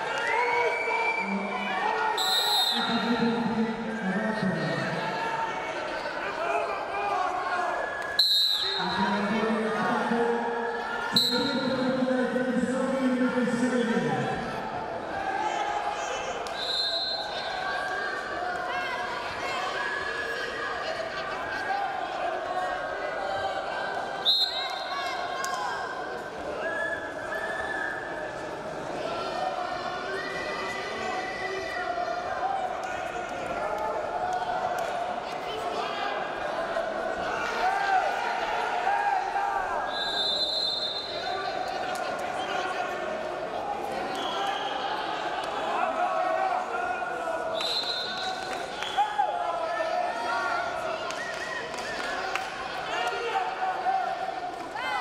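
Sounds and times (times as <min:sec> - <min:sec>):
crowd talking and calling out: 0:00.0 - 0:55.0
people shouting in a hall: 0:00.0 - 0:55.0.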